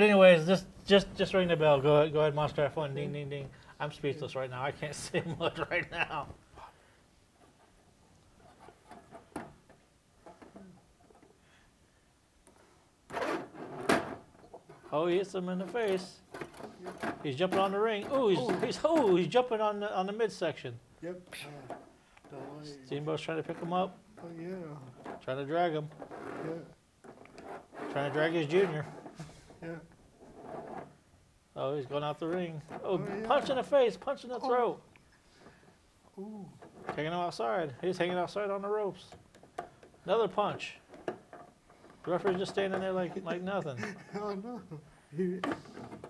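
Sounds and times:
man speaking: 0.0 - 6.4, 14.9 - 26.8, 31.6 - 34.9, 42.0 - 45.8.

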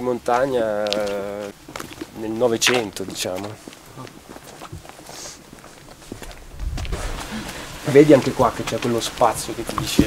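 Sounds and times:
footsteps on stone paving: 0.0 - 10.0
low microphone rumble: 6.4 - 7.8.

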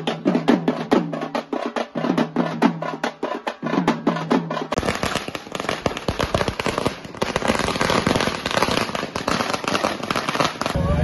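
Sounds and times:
drum beats: 0.0 - 11.0
firecrackers crackling: 4.7 - 11.0.

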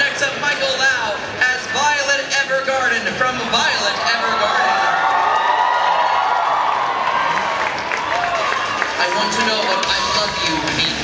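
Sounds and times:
man speaking over pa system: 0.0 - 4.9, 9.0 - 11.0.

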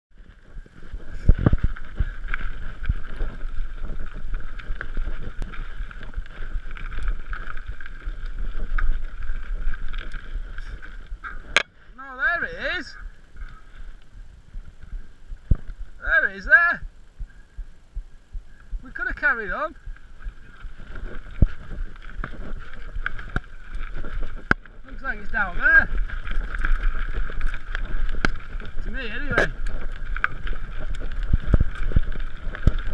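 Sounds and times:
wheels knocking on rocks: 0.1 - 17.6, 18.6 - 32.9
bike tyre and drivetrain noise: 0.1 - 32.9
wind on microphone: 0.1 - 32.9.

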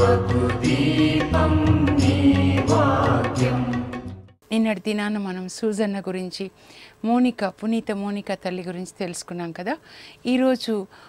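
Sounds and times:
chant-like singing: 0.0 - 4.0.

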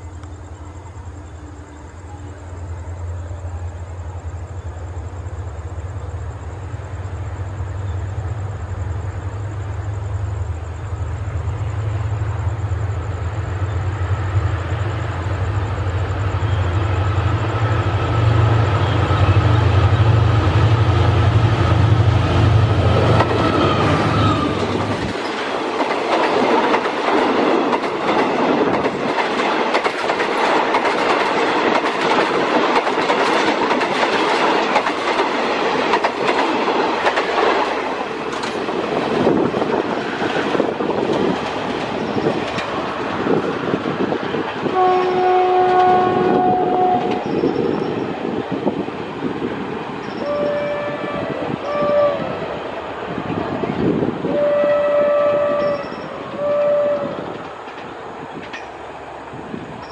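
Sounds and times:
train carriages rumbling: 0.0 - 59.9
wheels clicking over rail joints: 23.0 - 44.7, 57.2 - 59.9
train horn blasts: 44.7 - 47.4, 50.2 - 52.6, 54.2 - 57.3.

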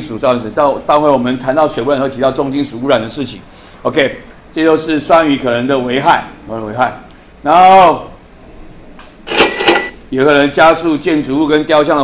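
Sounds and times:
cash register clatter and bell: 9.3 - 10.0.

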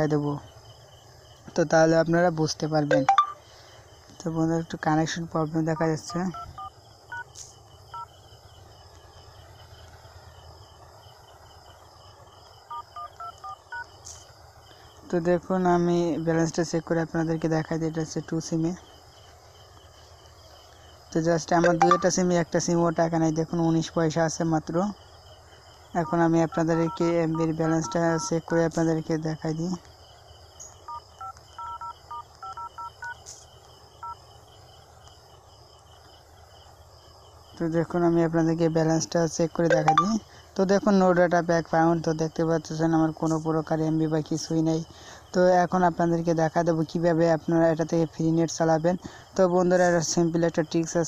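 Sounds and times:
phone keypad touch tones: 2.9 - 3.4, 6.1 - 7.4, 12.7 - 13.9, 21.6 - 22.2, 26.0 - 28.3, 30.9 - 33.2, 39.7 - 40.2.

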